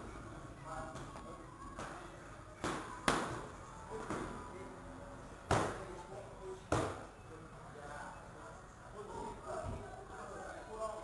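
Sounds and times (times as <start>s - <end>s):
strikes slapping pads: 2.6s - 3.4s, 5.5s - 5.8s, 6.7s - 7.1s.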